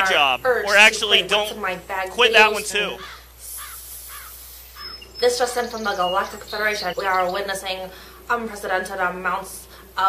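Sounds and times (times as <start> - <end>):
faint hiss: 0.0 - 4.9
bird calling: 0.0 - 8.1.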